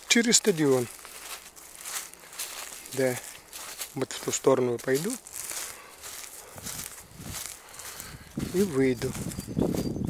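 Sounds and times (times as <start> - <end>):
footsteps through dry leaves: 0.0 - 10.0
wind rumbling on microphone: 6.1 - 10.0.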